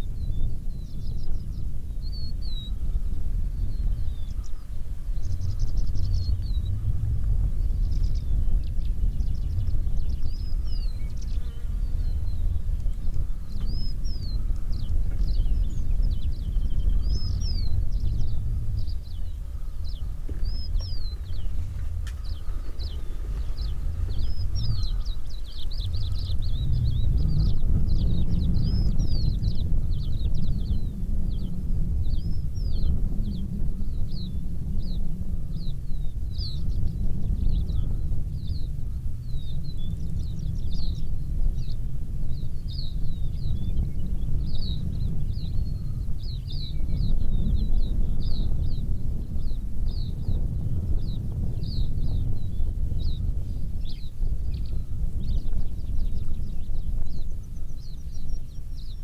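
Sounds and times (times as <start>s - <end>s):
birds chirping and whistling: 0.0s - 59.0s
steady low rumble: 0.0s - 59.0s.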